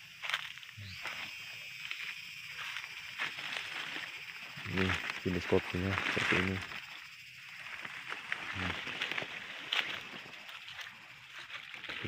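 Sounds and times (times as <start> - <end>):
leaves and branches rustling: 0.1 - 12.0.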